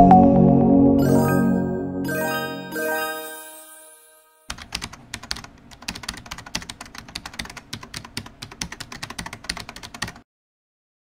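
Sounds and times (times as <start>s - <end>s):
rapid computer keyboard typing: 4.5s - 10.2s.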